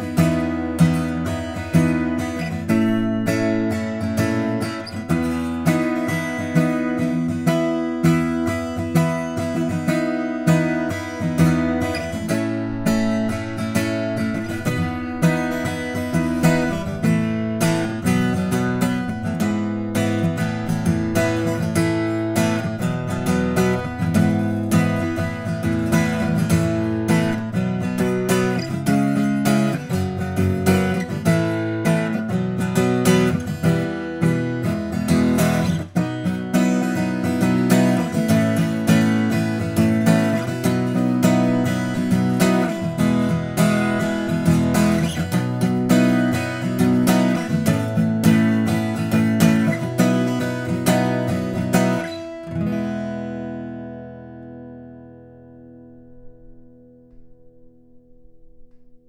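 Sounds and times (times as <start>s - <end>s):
fingerpicked acoustic guitar: 0.0s - 59.0s.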